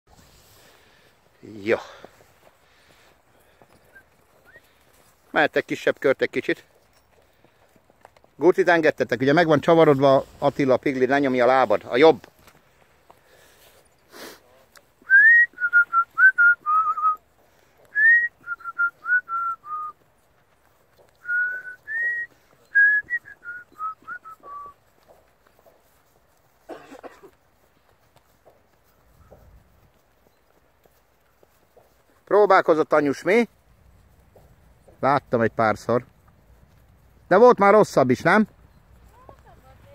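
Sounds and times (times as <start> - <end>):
faint hoofbeats on dirt: 0.1 - 39.9
person whistling a tune: 15.0 - 17.2, 17.9 - 20.0, 21.2 - 24.7.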